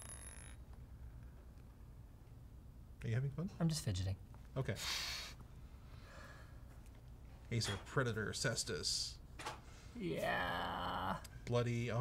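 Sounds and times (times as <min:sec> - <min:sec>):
small clicks with high ring: 0:00.0 - 0:00.6
faint low room hum: 0:00.0 - 0:12.0.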